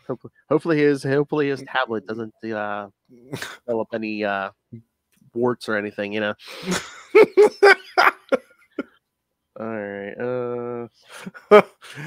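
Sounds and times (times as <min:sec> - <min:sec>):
man laughing: 0:06.6 - 0:08.9, 0:11.1 - 0:12.0.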